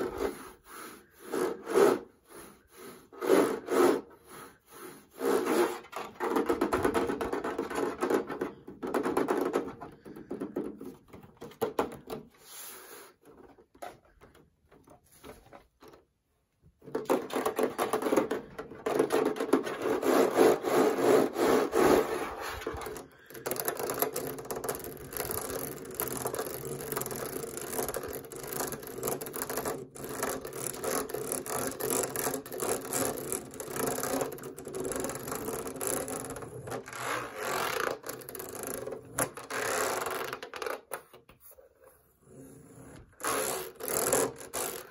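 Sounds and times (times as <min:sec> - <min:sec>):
fingernails scratching on plastic: 0:00.0 - 0:11.6, 0:16.9 - 0:40.8, 0:42.6 - 0:44.9.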